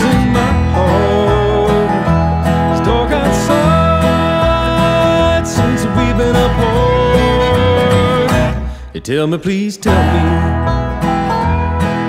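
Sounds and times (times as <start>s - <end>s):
sliding lead melody: 0.0s - 9.0s, 9.8s - 12.0s
bass line: 0.0s - 12.0s
plucked acoustic strings: 0.0s - 12.0s.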